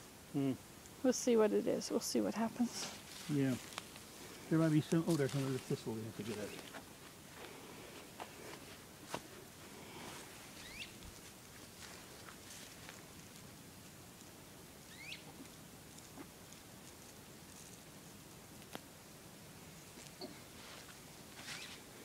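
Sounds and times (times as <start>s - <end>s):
short rising chirps: 10.6s - 11.0s.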